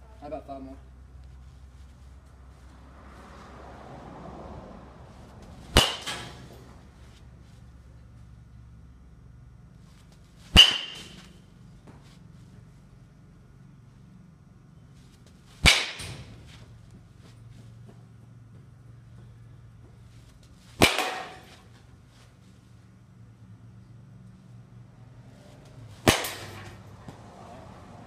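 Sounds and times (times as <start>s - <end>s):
baseball bat striking ball: 5.6s - 6.7s, 10.5s - 11.4s, 15.6s - 16.6s, 20.8s - 21.7s, 25.9s - 27.2s.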